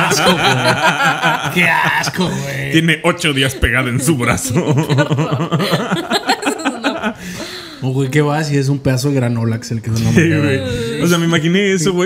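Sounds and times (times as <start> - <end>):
people talking: 0.0 - 7.1, 7.8 - 12.0
people laughing: 0.0 - 8.1, 10.0 - 11.5.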